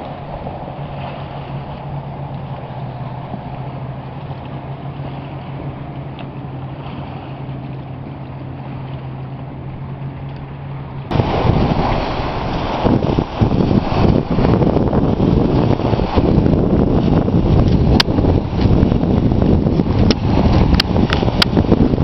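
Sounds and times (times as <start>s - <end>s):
steady low hum: 0.0s - 22.0s
wind buffeting microphone: 0.0s - 22.0s
small waves on rocky shore: 11.1s - 22.0s.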